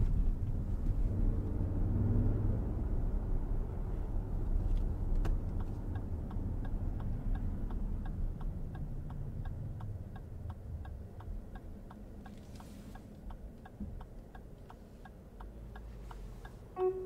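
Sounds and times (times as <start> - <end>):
low road rumble: 0.0 - 17.0
turn signal clicking: 4.7 - 17.0.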